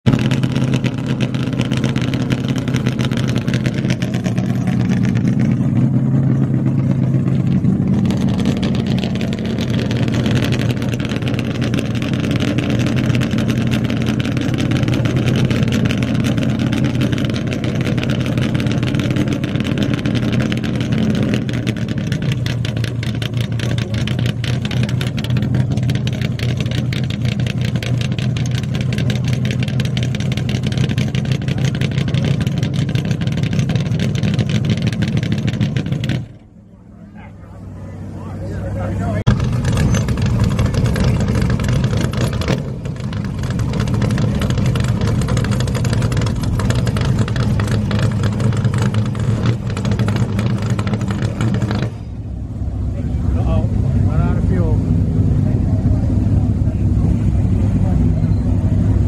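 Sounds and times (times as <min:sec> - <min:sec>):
race car engine idling: 0:00.0 - 0:59.0.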